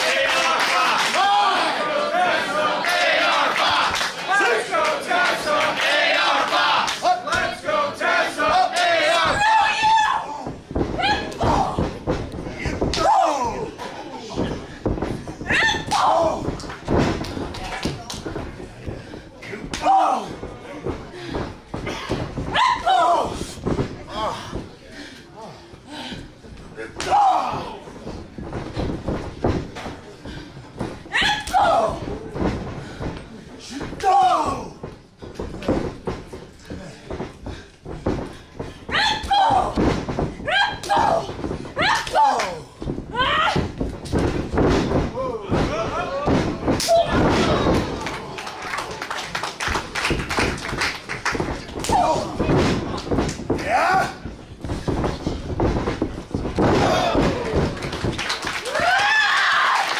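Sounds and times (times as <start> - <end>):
crowd shouting: 0.0 - 10.4
wrestling ring thudding and rattling: 2.2 - 24.9, 25.5 - 59.9
running feet on ring: 2.2 - 59.9
bodies hitting mat: 8.4 - 24.8, 26.2 - 48.5, 49.4 - 59.7.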